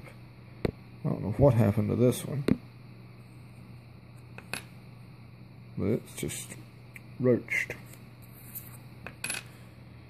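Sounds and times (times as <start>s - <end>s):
steady low hum: 0.0s - 10.0s
coin metallic clink: 9.2s - 9.5s.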